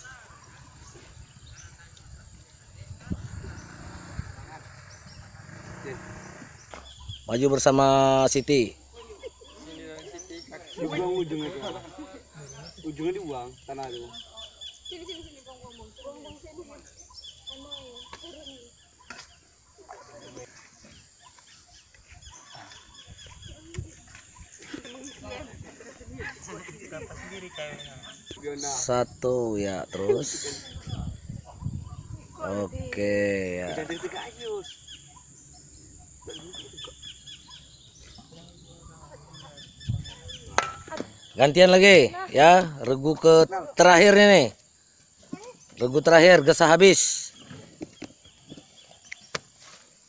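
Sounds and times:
low voices: 0:00.0 - 0:06.8
bird chirping: 0:00.0 - 0:50.0.

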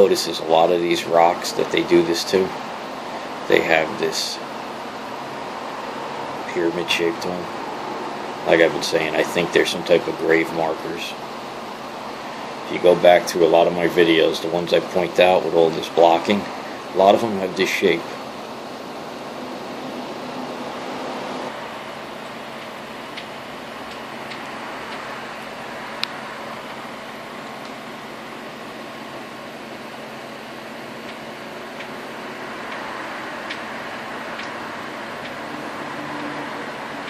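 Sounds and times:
fan running: 0:00.0 - 0:37.0.

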